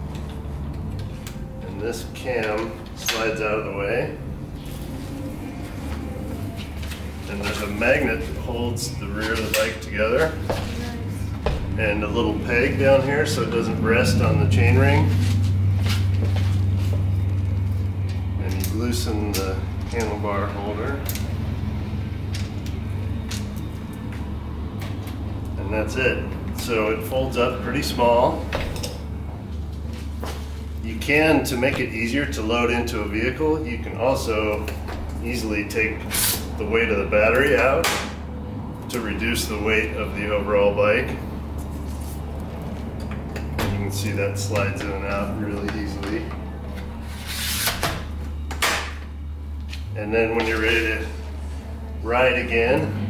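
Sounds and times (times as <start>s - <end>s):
low background music: 0.0s - 53.0s
steady low hum: 0.0s - 53.0s.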